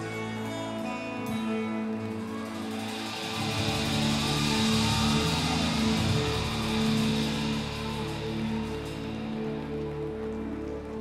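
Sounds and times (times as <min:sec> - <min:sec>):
high hiss: 0:02.3 - 0:10.4.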